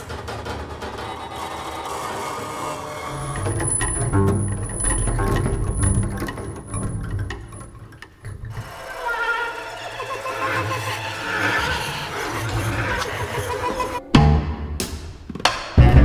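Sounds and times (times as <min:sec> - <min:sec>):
clattering mechanical textures: 0:00.0 - 0:14.0
experimental ensemble music: 0:00.0 - 0:16.0.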